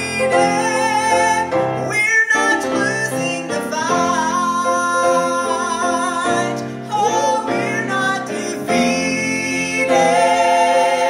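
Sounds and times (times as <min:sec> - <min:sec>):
women singing a church song: 0:06.4 - 0:11.0.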